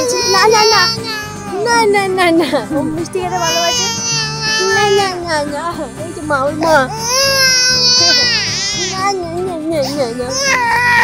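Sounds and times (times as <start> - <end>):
baby crying: 0.0 - 2.0, 3.2 - 5.5, 6.7 - 11.0.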